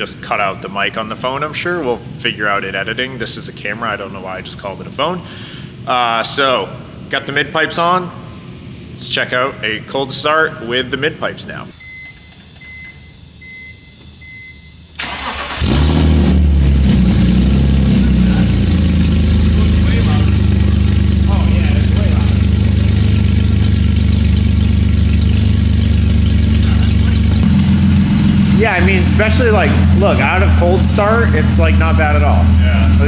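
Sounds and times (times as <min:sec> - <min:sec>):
starter motor cranking: 0:15.0 - 0:16.1
car engine fast idle: 0:15.0 - 0:33.0.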